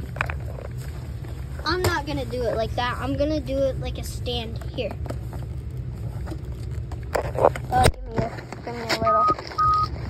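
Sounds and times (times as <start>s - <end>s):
rustling handling noise: 0.0s - 10.0s
short electronic beeps: 9.1s - 9.9s.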